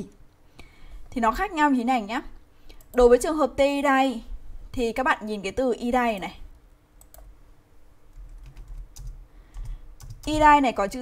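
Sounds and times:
computer keyboard typing: 7.0 - 7.3, 8.1 - 10.8.

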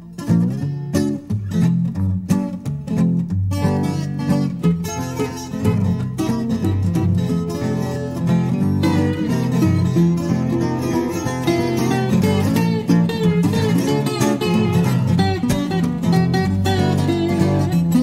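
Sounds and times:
fingerpicked acoustic guitar: 0.0 - 18.0.

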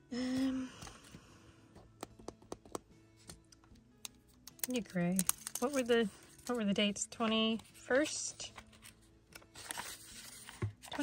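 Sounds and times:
faint background music: 0.0 - 11.0
plastic pens clicking and tapping: 1.8 - 7.8.

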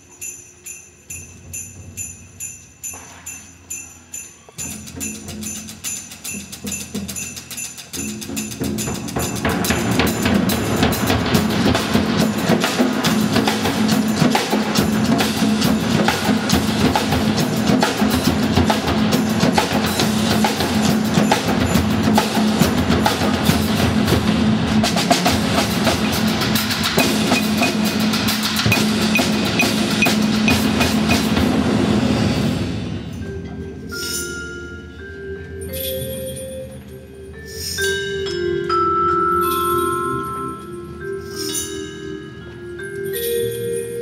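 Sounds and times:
percussion ensemble playing: 0.0 - 44.0
high mallet note: 27.0 - 28.1, 28.7 - 31.4.

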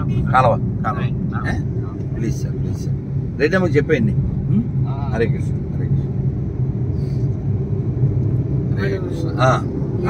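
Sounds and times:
road and engine rumble in car: 0.0 - 10.0.

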